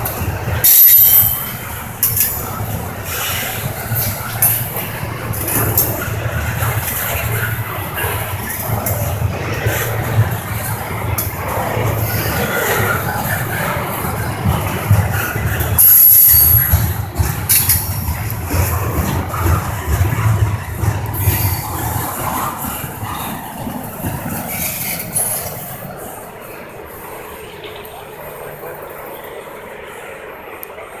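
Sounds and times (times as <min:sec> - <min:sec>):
train wheels rumbling on rails: 0:00.0 - 0:31.0
high-pitched bursts: 0:00.7 - 0:01.6.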